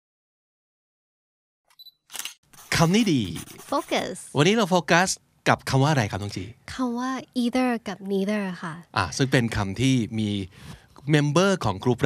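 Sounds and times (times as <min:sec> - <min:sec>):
camera autofocus beep: 0:01.7 - 0:02.4
camera shutter click: 0:02.1 - 0:02.4
person speaking: 0:02.6 - 0:04.9.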